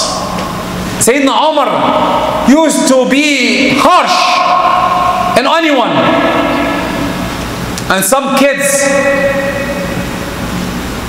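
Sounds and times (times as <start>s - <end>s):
low hum from sound system: 0.0s - 11.0s
man's voice through microphone: 1.0s - 10.2s.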